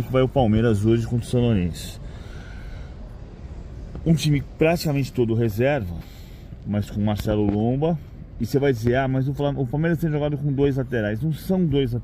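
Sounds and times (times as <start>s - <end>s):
background hiss: 0.0s - 12.0s.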